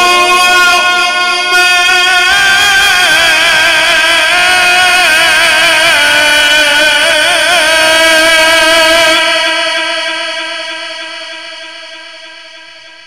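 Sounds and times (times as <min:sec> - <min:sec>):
man chanting through microphone: 0:00.0 - 0:13.0.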